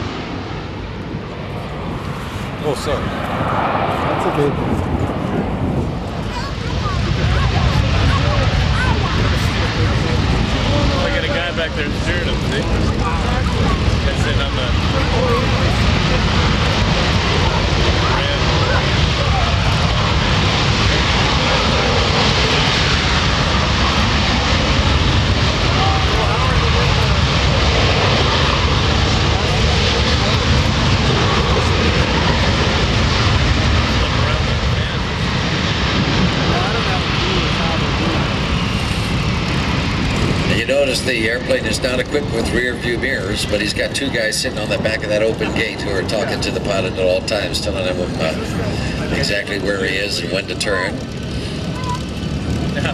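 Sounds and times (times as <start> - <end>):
jet engines running: 0.0 - 52.9.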